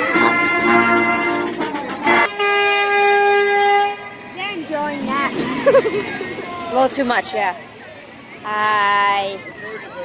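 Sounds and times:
vehicle horn blast: 0.0s - 4.3s.

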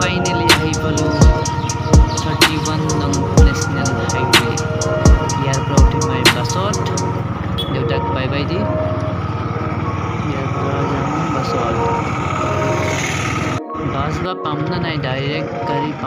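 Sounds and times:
voices: 0.0s - 12.9s, 13.8s - 16.0s
scooter engine: 0.0s - 14.0s
music: 0.0s - 16.0s
road and wind noise: 0.0s - 16.0s.

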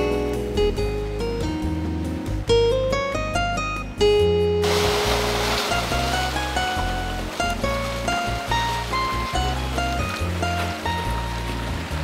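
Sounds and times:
background music melody: 0.0s - 12.0s
surf washing through rocks: 4.6s - 12.0s.

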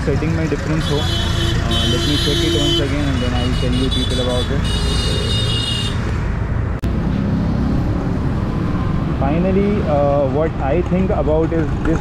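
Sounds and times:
city traffic noise: 0.0s - 12.0s
high steady horn-like tone: 0.8s - 6.0s.

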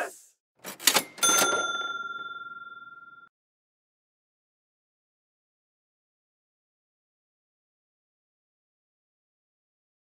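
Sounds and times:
ringing metallic bell strike: 1.2s - 3.3s.

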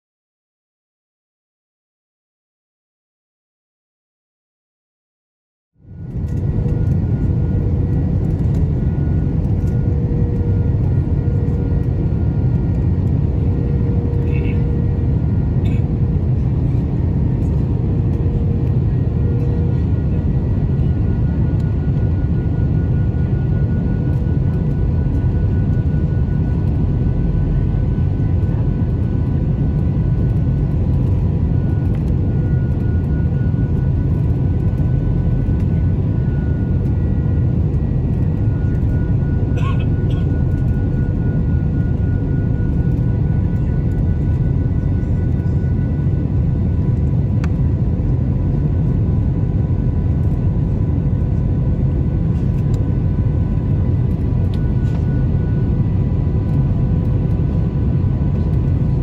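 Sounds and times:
jet engine and airflow roar: 5.8s - 59.0s.

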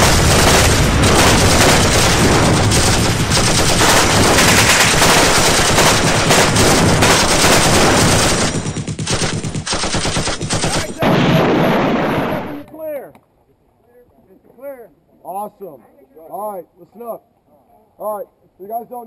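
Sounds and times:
rapid automatic gunfire: 0.0s - 12.7s
steady noise: 0.0s - 12.7s.

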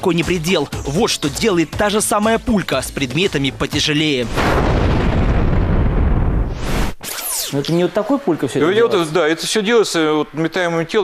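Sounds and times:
explosion rumble: 4.2s - 7.0s.

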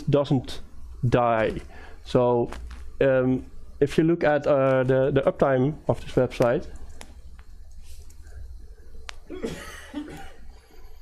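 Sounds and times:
breathy cough: 9.3s - 10.5s.

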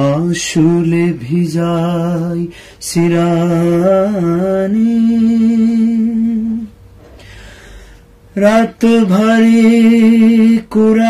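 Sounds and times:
man singing unaccompanied: 0.0s - 6.7s, 8.3s - 11.0s.

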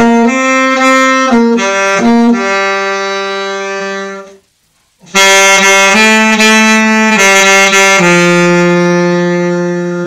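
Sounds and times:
tenor saxophone long note: 0.0s - 4.4s, 5.0s - 10.0s.

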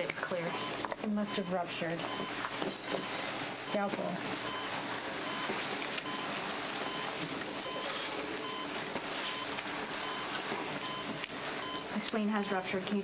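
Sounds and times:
patient monitor beeping: 0.0s - 12.6s
background wash: 0.0s - 12.8s.

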